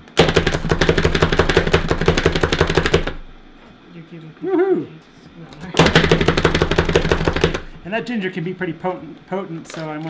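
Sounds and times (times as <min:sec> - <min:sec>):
food chopper clacking: 0:00.0 - 0:03.3, 0:05.8 - 0:07.8.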